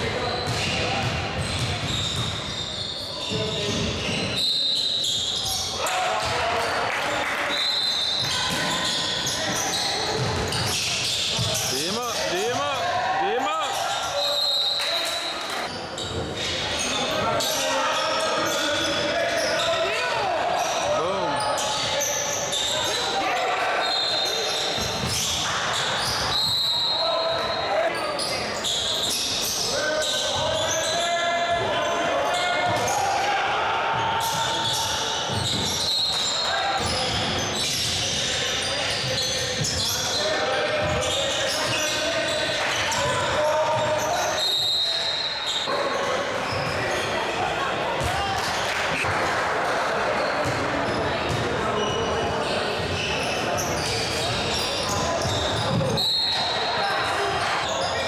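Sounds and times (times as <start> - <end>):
sneakers squeaking: 0.0 - 6.4, 7.3 - 49.1, 50.0 - 58.0.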